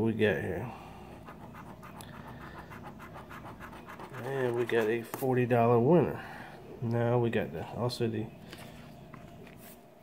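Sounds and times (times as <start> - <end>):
coin scratching lottery ticket: 1.1 - 5.0.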